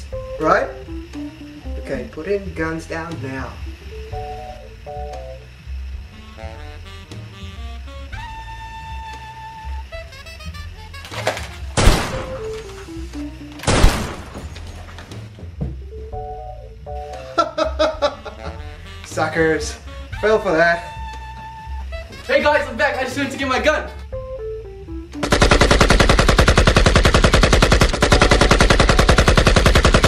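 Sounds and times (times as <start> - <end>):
background music with melody and bass: 0.0 - 25.4
pistol gunshots: 11.8 - 12.6, 13.6 - 14.6, 25.2 - 30.0.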